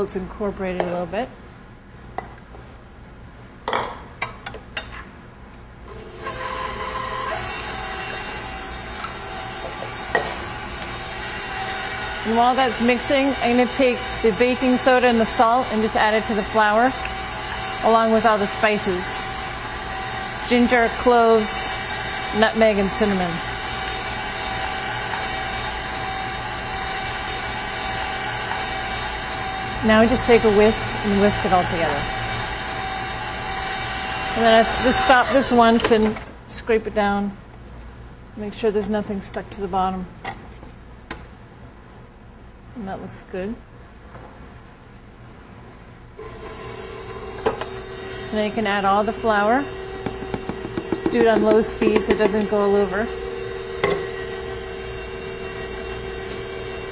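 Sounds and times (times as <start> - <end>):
stand mixer motor running: 6.0 - 35.7, 46.2 - 56.9.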